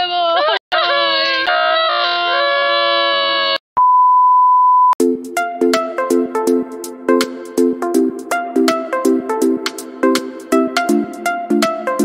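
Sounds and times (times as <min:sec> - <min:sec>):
censor beep: 0:03.8 - 0:05.0
electronic music with a beat: 0:05.0 - 0:12.0.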